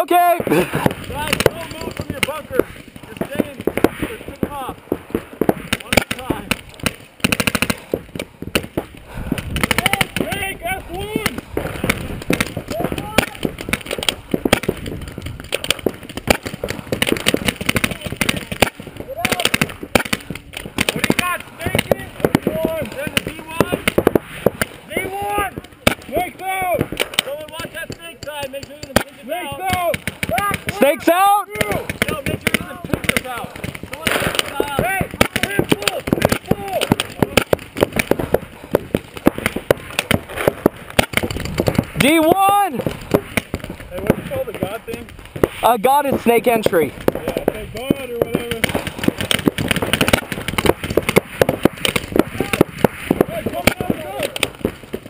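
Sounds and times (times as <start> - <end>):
paintball markers firing: 0.2 - 55.0
voices shouting: 9.7 - 14.2, 17.9 - 23.9, 24.7 - 27.8, 29.2 - 38.3, 52.2 - 54.5.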